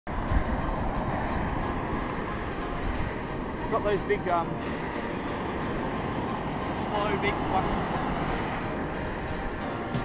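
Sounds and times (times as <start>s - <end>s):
wind buffeting microphone: 0.1s - 10.0s
surf breaking on beach: 0.2s - 9.5s.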